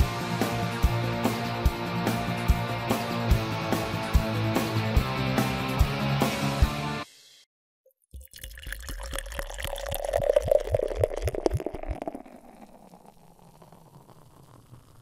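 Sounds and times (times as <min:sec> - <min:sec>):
liquid pouring: 0:08.0 - 0:15.0
dripping: 0:08.1 - 0:15.0.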